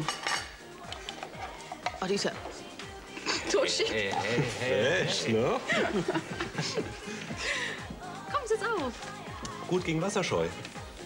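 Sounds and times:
dishes and cutlery clinking: 0:00.0 - 0:02.6
quiet background music: 0:00.0 - 0:11.0.

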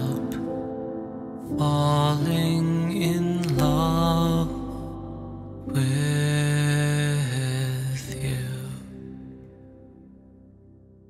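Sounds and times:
soft grand piano: 0:00.0 - 0:11.0
man singing long notes: 0:01.5 - 0:09.1.

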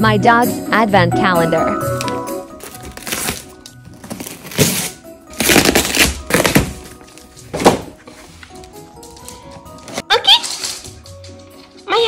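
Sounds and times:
faint background music: 0:00.0 - 0:12.0
dog tearing wrapping paper: 0:02.6 - 0:07.8.

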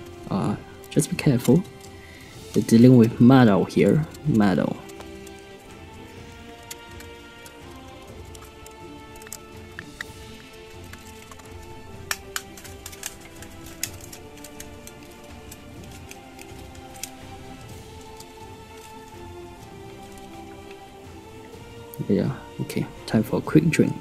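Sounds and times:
orchestral music: 0:00.0 - 0:24.0
metal pieces clicking and tapping: 0:03.8 - 0:20.8.

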